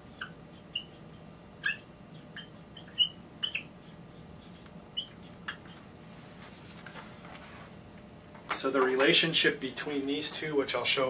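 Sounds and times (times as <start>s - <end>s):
marker squeaking on whiteboard: 0.0s - 6.0s.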